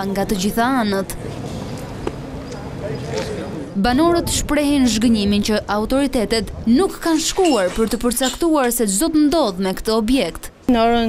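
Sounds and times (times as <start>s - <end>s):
traffic noise: 0.0s - 11.0s.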